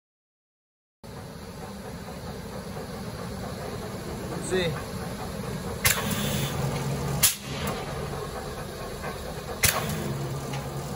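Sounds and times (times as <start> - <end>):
punch press rumbling: 3.4 - 10.9.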